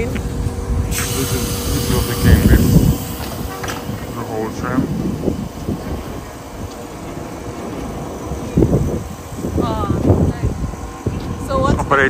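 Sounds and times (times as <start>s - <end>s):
electric tram rumble and hum: 0.0s - 12.0s.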